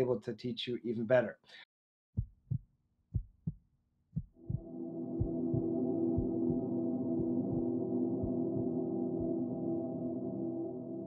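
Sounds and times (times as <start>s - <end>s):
heartbeat-like thumps: 2.2s - 3.6s, 4.2s - 9.4s
ringing gong-like chord: 4.6s - 11.0s.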